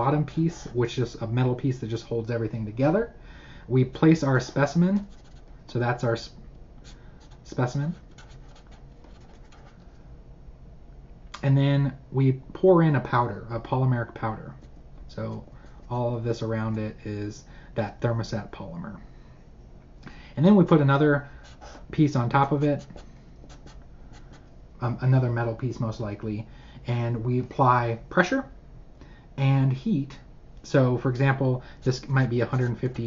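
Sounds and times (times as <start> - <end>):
low room hum: 0.0 - 33.0
marker scratching on paper: 4.6 - 5.5, 6.8 - 9.9, 21.4 - 21.8, 22.4 - 24.5, 31.9 - 33.0.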